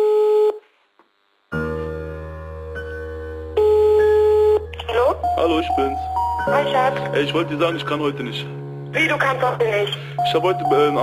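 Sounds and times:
telephone ringback beep: 3.6 - 6.0.

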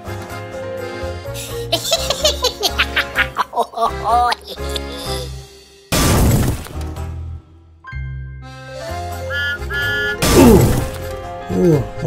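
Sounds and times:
background music: 0.0 - 12.0
character voice laughing: 1.5 - 5.4.

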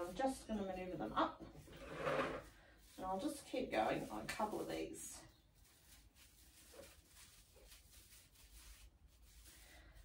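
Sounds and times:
faint rustling of artificial branches: 0.0 - 10.0.

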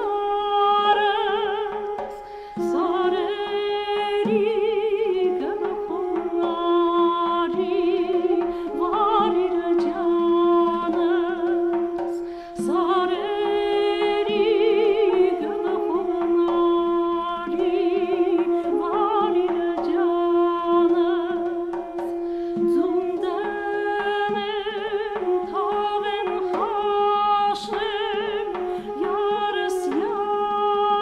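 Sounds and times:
duduk drone: 0.0 - 31.0
duduk melody with vibrato: 0.0 - 31.0.

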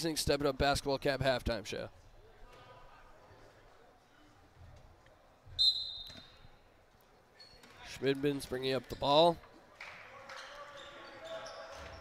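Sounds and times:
referee whistle blast: 5.6 - 6.4.

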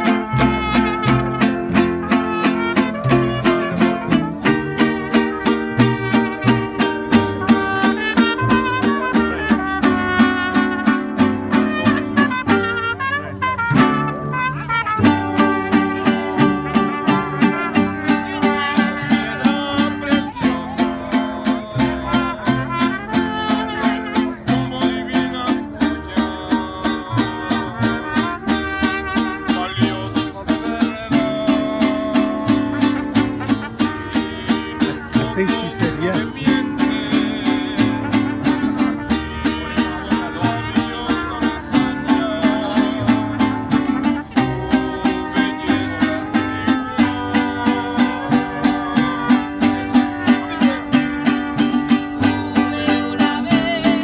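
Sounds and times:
mariachi band playing: 0.0 - 54.0
strummed guitars: 0.0 - 54.0.

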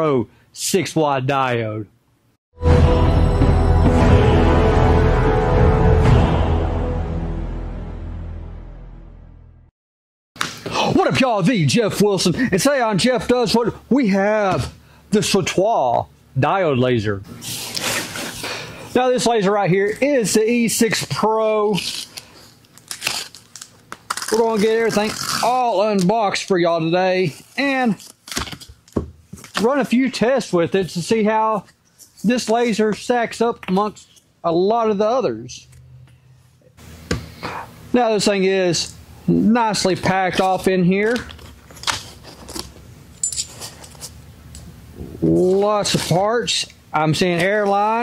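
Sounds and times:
small hard parts clinking: 43.2 - 44.0.

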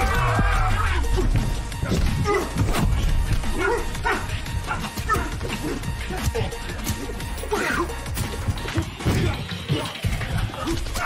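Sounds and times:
men yelling grunts: 0.0 - 6.6
soundtrack music with bass line: 0.0 - 11.0.

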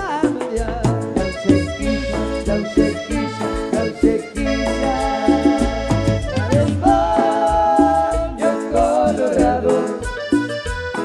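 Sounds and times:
pulsing bass beat: 0.0 - 11.0
wavering melodic lead: 1.2 - 11.0.

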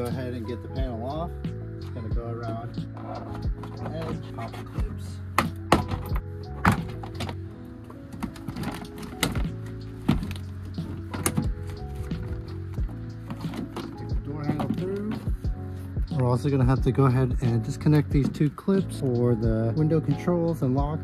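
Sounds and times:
background music with low beat: 0.0 - 21.0.

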